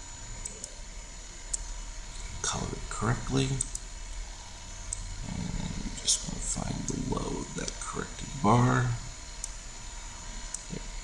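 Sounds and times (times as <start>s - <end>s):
low electrical hum: 0.0s - 11.0s
computer mouse clicks: 3.6s - 3.9s.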